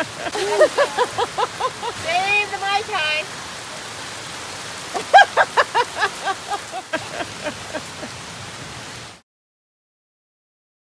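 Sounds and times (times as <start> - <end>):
person laughing: 0.0 - 2.0, 4.9 - 8.2
heavy rain on umbrella: 0.0 - 9.2.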